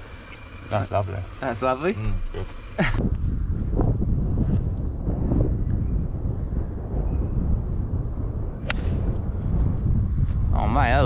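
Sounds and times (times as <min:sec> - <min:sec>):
wind buffeting microphone: 0:00.0 - 0:11.0
golf club striking ball: 0:08.6 - 0:09.1.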